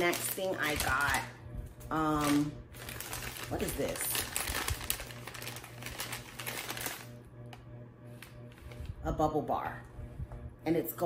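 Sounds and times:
paper bag rustling and crinkling: 0.0s - 1.3s, 2.0s - 7.1s.

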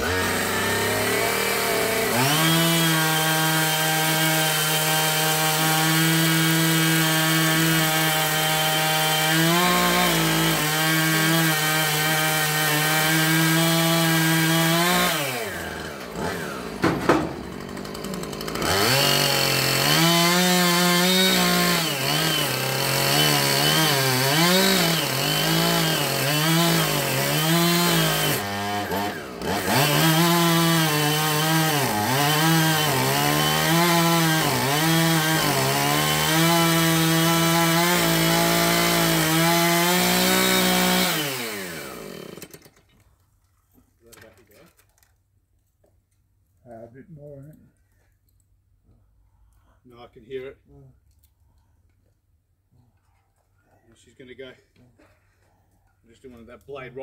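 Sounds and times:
chainsaw cutting tree trunk: 0.0s - 42.8s.

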